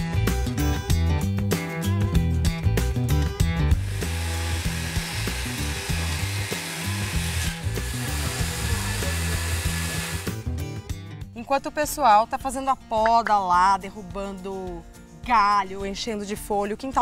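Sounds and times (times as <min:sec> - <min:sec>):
guitar background music: 0:00.0 - 0:17.0
pole saw buzzing through branch: 0:03.7 - 0:10.5.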